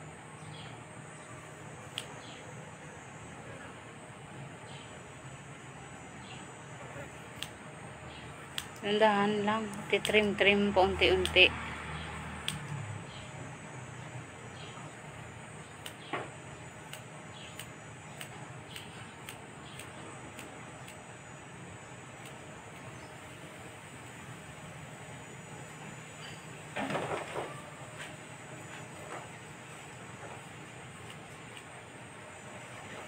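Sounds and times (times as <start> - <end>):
scissors snipping hair: 1.9 - 2.2, 7.3 - 7.6, 8.5 - 9.0, 9.6 - 11.5, 12.4 - 12.8, 15.8 - 16.1, 16.9 - 21.0, 31.0 - 31.8.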